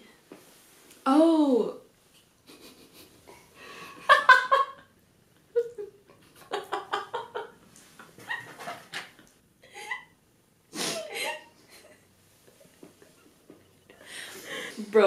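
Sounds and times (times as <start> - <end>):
women giggling: 5.5 - 10.2, 10.8 - 14.8.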